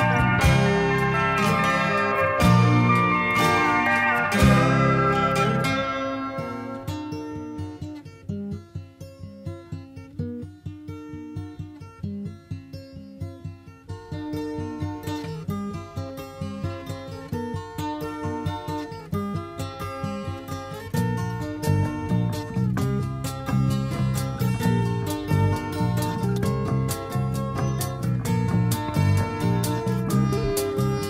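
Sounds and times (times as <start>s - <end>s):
acoustic guitar picking: 0.0s - 31.0s.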